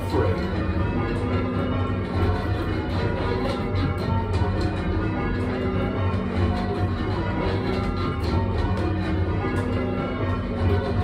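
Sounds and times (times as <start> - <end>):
church bells ringing: 0.0 - 11.0.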